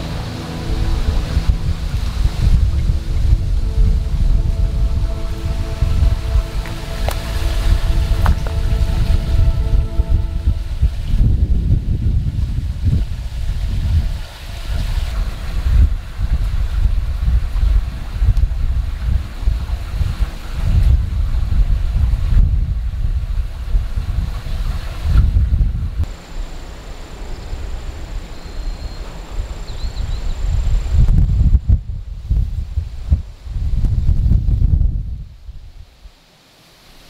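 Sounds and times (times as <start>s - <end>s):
wind buffeting microphone: 0.0s - 36.2s.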